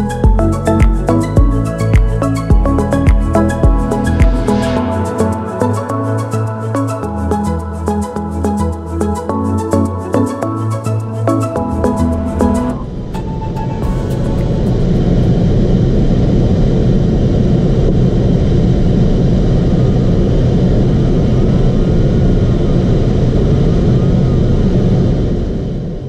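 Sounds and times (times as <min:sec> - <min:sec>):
airflow rushing around cockpit: 0:00.0 - 0:26.0.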